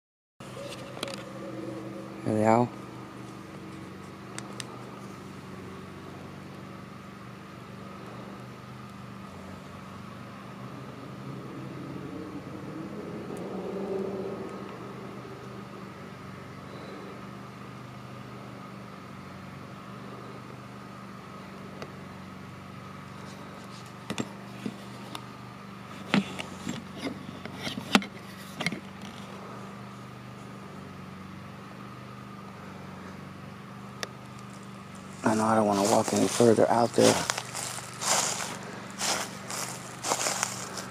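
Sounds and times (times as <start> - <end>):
low mechanical hum: 0.4 - 40.9.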